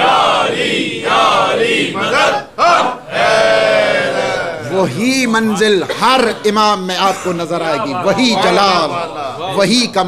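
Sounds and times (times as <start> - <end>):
congregation chanting a response: 0.0 - 4.7
man speaking: 4.3 - 10.0.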